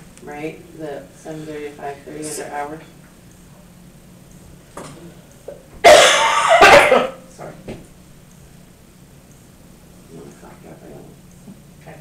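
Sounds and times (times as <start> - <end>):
person coughing: 5.8 - 7.2.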